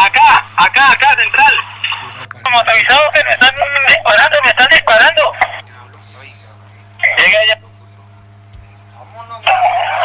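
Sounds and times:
voices on police radio: 0.0 - 7.8, 9.0 - 10.0
low electrical hum: 0.0 - 10.0.

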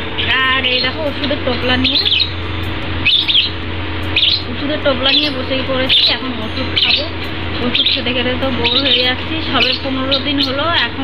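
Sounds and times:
bird chirps: 0.0 - 10.8
low steady hum: 0.0 - 11.0.

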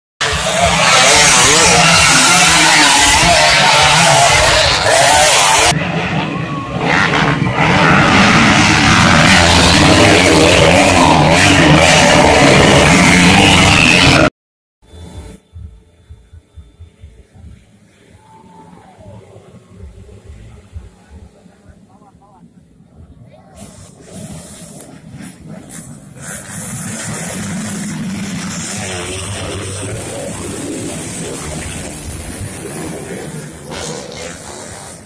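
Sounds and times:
crowd voices: 0.2 - 14.3, 16.8 - 35.0
motocross bike engines revving: 0.2 - 14.3, 14.9 - 35.0.

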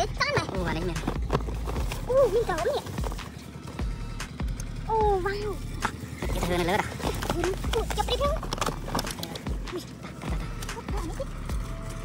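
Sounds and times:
cardboard boxes tapping and knocking: 0.3 - 3.8, 5.8 - 9.7.

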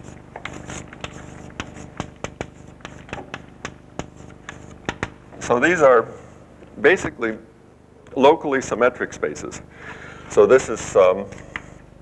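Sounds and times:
chalk tapping on blackboard: 0.0 - 5.2.

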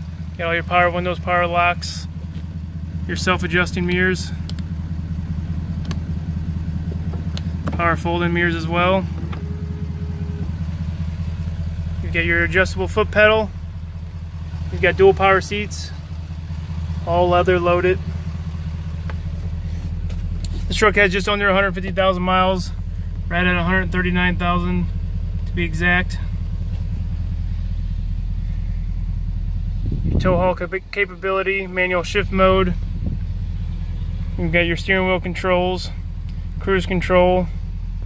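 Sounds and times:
diesel engine idling: 0.0 - 38.0.

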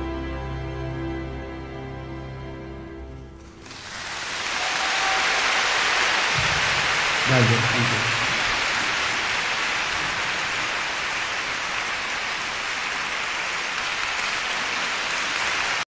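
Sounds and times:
audience applauding: 3.6 - 15.9.

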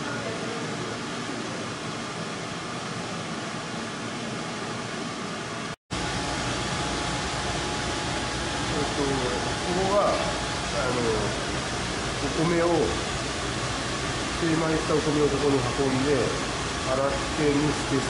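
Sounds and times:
steady fan hiss: 0.0 - 18.0.

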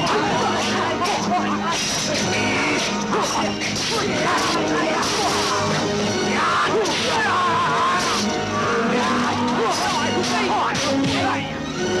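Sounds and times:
loud music soundtrack: 0.0 - 12.0.

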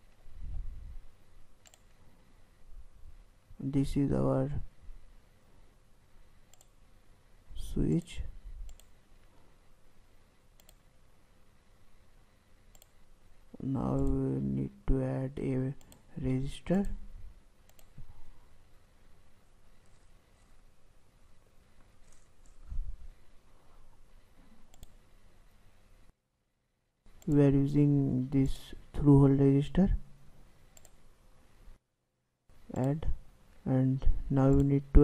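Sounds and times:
faint background hiss: 0.0 - 35.0
computer mouse clicks: 1.6 - 2.0, 6.4 - 6.8, 8.0 - 9.3, 10.6 - 10.9, 12.7 - 13.0, 13.9 - 14.2, 15.8 - 16.1, 17.6 - 18.1, 24.6 - 25.0, 27.1 - 27.5, 30.7 - 31.0, 34.4 - 34.8.

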